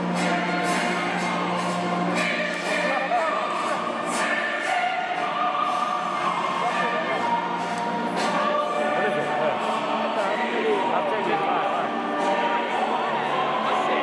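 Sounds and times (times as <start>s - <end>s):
choral singing: 0.0s - 14.0s.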